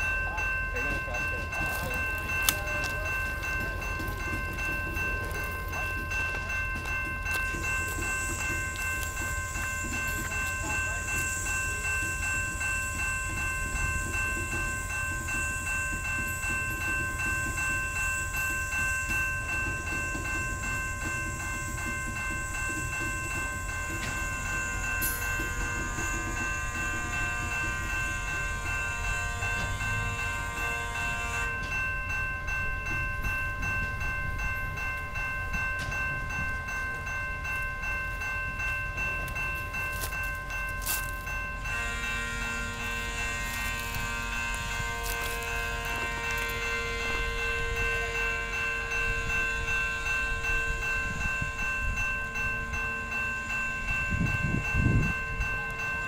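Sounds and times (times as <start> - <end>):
crossing bell ringing: 0.0 - 56.0
train wheels rumbling: 0.0 - 56.0.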